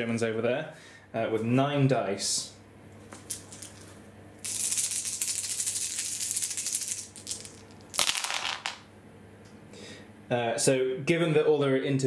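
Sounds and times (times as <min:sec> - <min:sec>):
dice clattering onto table: 0:03.1 - 0:08.9
dice rattling: 0:03.2 - 0:08.8.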